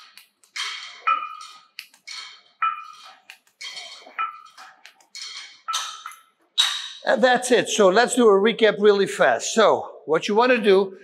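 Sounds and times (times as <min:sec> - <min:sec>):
weight stack clanking: 0:00.0 - 0:07.0.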